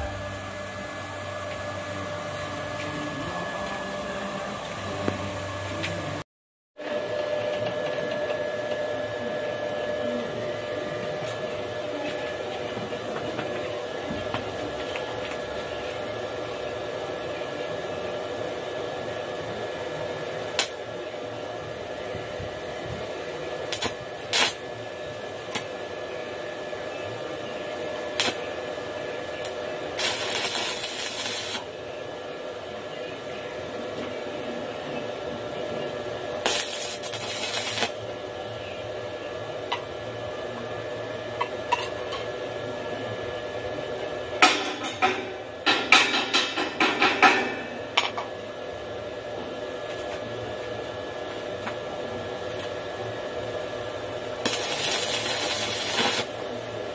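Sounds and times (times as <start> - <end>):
crackling welding arc: 20.5 - 20.8, 23.5 - 24.7, 25.4 - 25.8, 27.3 - 31.7, 36.4 - 38.2, 54.2 - 56.5.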